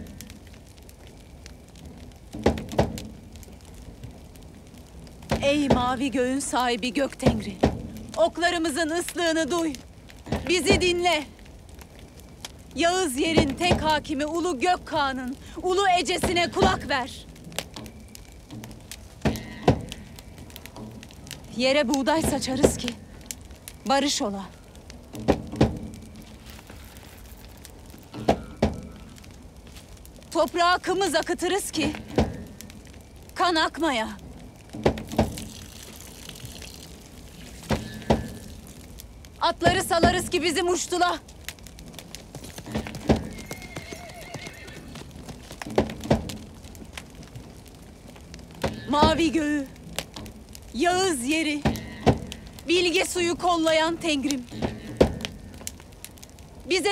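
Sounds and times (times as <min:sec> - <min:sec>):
horse neighing: 0:42.8 - 0:45.1
hoof thumps on ground: 0:44.8 - 0:46.6.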